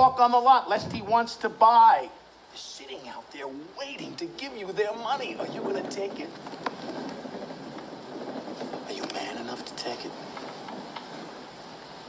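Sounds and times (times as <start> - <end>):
man speaking: 0.0 - 6.4
film background noise: 0.0 - 12.0.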